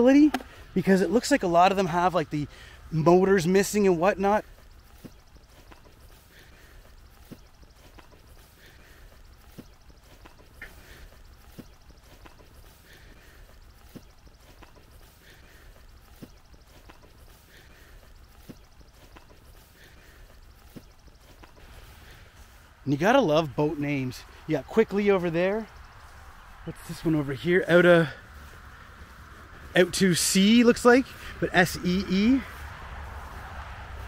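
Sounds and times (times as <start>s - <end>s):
footsteps through tall grass: 0.0s - 34.0s.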